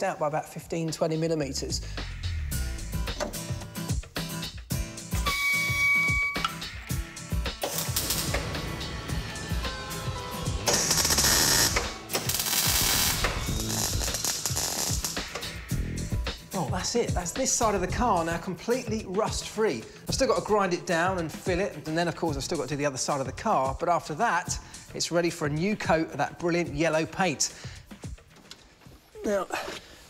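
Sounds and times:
background music: 0.0s - 30.0s
welder crackling hiss: 7.6s - 8.9s, 10.6s - 15.6s.

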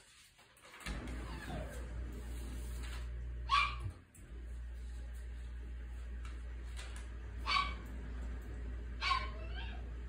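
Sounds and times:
small dog whining: 1.2s - 1.8s, 9.0s - 9.9s.

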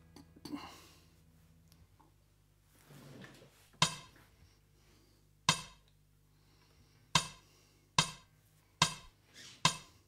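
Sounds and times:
drums and bass backing track: 8.0s - 9.9s.

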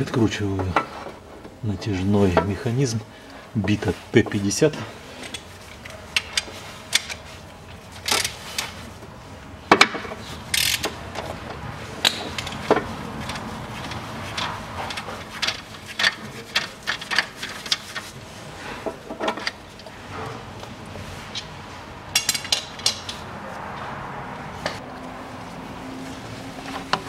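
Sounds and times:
ratchet wrench clicking: 10.5s - 11.0s.

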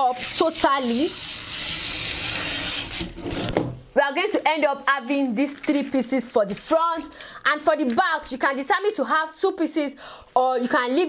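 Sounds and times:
scissors cutting paper: 0.0s - 3.6s.

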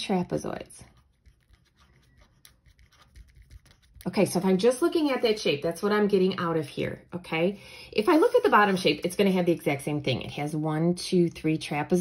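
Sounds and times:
pen scratching on paper: 0.9s - 4.4s, 8.0s - 9.1s.

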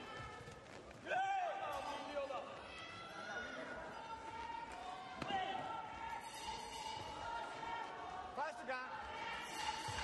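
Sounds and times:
murmur of voices: 1.5s - 10.0s.

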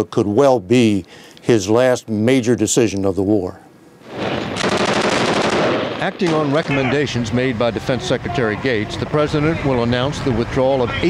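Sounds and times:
rapid automatic gunfire: 4.1s - 6.8s.

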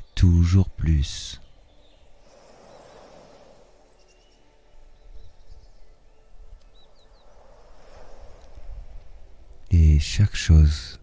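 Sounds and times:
bird chirps and calls: 0.0s - 7.5s
ocean waves: 1.0s - 11.0s.

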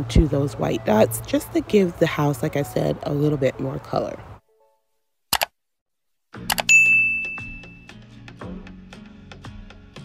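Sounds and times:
background music: 0.0s - 4.8s, 6.4s - 10.0s
bell-like ding: 6.6s - 7.9s.

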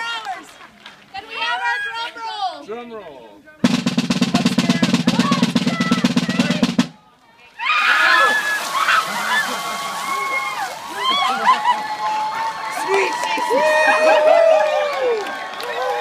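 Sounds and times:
fast snare drum roll: 3.6s - 7.0s
water splashing: 7.6s - 12.5s
people shrieking and yelling: 7.6s - 16.0s.

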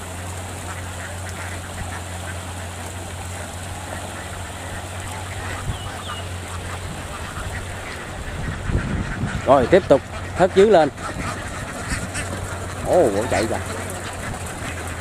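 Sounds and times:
ducks quacking: 0.0s - 15.0s
steady low hum: 0.0s - 15.0s.

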